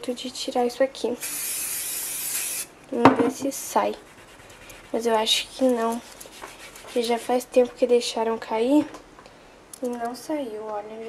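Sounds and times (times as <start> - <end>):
aerosol spray hissing: 1.2 - 2.7.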